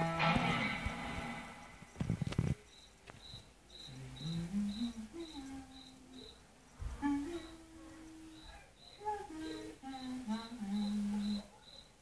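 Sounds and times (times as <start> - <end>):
cricket chirps: 1.4 - 12.0
person humming a slow tune: 3.9 - 6.2, 6.9 - 8.4, 9.0 - 11.5.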